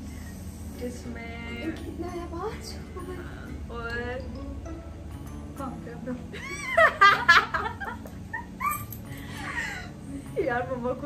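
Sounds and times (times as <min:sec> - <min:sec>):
women laughing: 0:06.4 - 0:09.9.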